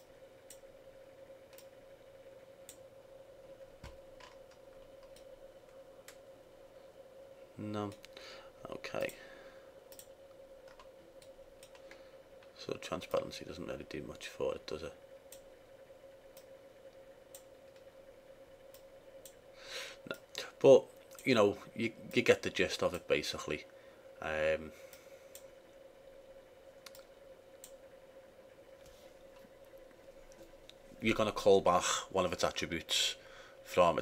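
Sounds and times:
faint steady hum: 0.0s - 34.0s
computer mouse clicks: 1.5s - 1.8s, 3.8s - 5.3s, 9.9s - 12.0s, 26.8s - 27.8s
faint computer mouse clicks: 26.8s - 27.8s.

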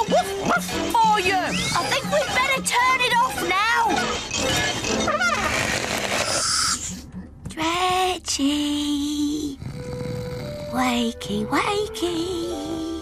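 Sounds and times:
children's background music: 0.0s - 5.7s, 6.8s - 13.0s
cartoon snoring sound effects: 9.4s - 11.0s.

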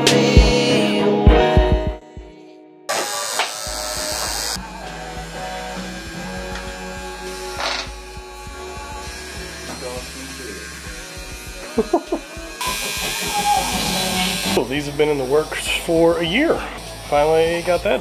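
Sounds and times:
music playing: 0.0s - 2.7s, 3.6s - 18.0s
tattoo machine buzzing: 2.9s - 18.0s.

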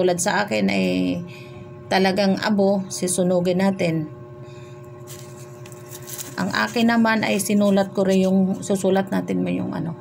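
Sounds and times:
low background hum: 0.0s - 10.0s
paper and garlic skin rustling: 5.0s - 8.8s.

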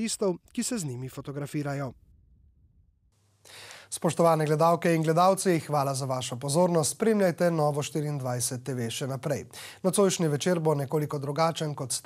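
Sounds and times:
man speaking: 0.0s - 2.0s, 3.9s - 12.0s
man breathing in: 3.4s - 3.9s, 9.5s - 9.8s.

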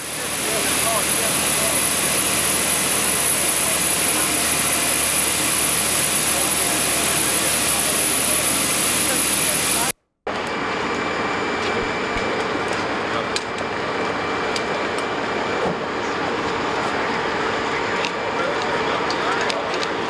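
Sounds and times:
faint voices: 0.0s - 10.0s, 11.7s - 20.0s
jet engine noise: 0.0s - 20.0s.

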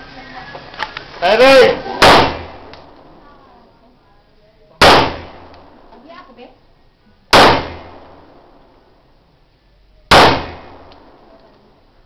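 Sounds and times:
loud sharp bangs: 2.0s - 3.1s, 4.8s - 5.9s, 7.3s - 8.7s, 10.1s - 11.4s.

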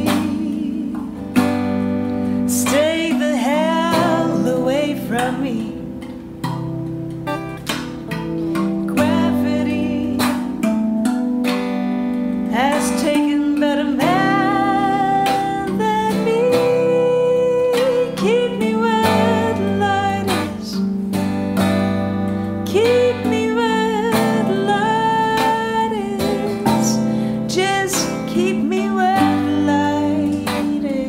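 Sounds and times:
woman singing: 0.0s - 6.2s, 8.3s - 31.0s
clean electric guitar: 0.0s - 31.0s.

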